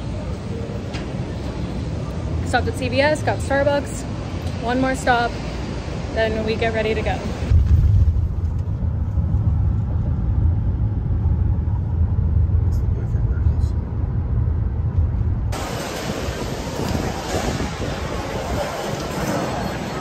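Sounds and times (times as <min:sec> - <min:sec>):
crowd noise outdoors: 0:00.0 - 0:09.4, 0:14.7 - 0:20.0
car cabin road rumble: 0:07.0 - 0:20.0.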